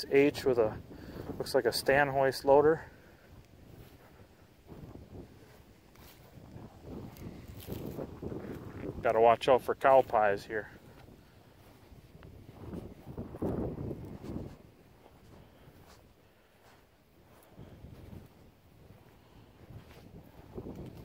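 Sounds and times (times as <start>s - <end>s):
wind buffeting microphone: 0.0s - 21.0s
footsteps on grass: 0.3s - 21.0s.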